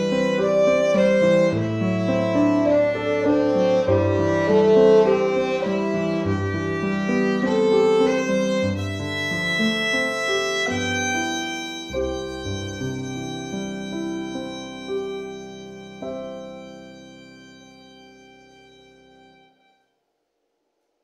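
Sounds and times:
piano accompaniment: 0.0 - 19.7
violin slow bowed melody: 0.0 - 19.9.

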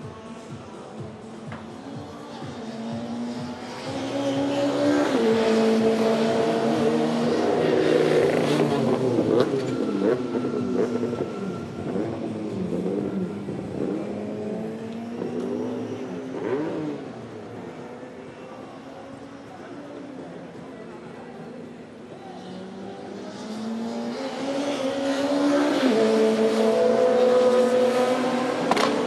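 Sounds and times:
race car engine with gear changes: 1.2 - 29.0.

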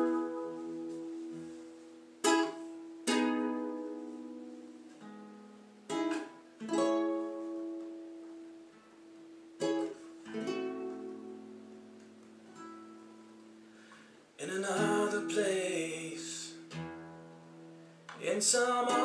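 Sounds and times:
acoustic guitar chords: 0.0 - 19.0.

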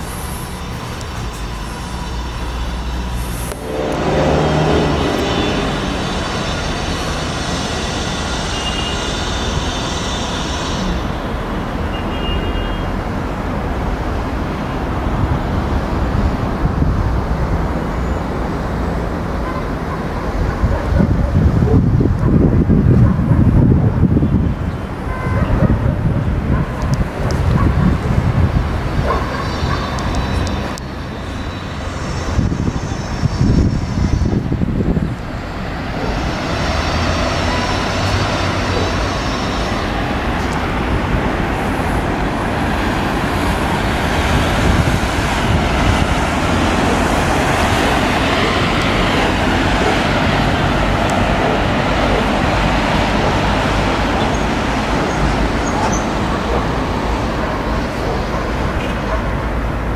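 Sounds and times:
hiss of city traffic: 0.0 - 59.9
wind buffeting microphone: 13.2 - 31.0, 31.8 - 59.9.

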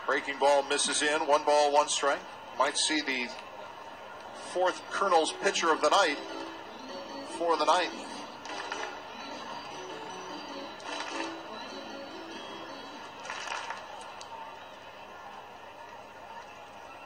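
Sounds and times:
crowd hum: 0.0 - 17.0
faint ballpark music: 0.0 - 17.0.

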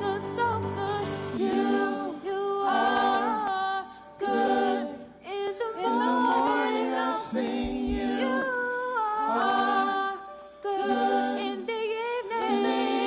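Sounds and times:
woman singing gospel song: 0.0 - 13.0.

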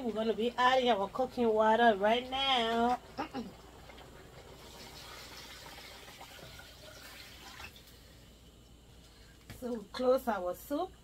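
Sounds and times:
water pouring into a pot: 2.3 - 8.2.

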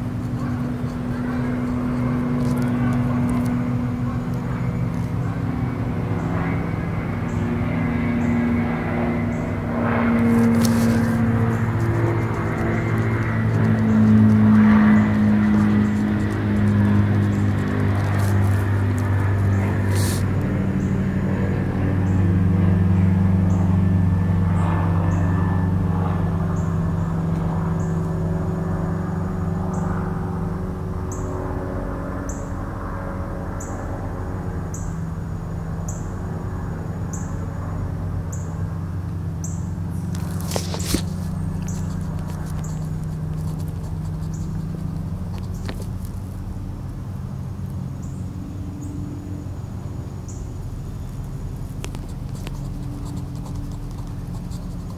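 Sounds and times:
low engine drone: 0.0 - 54.9.

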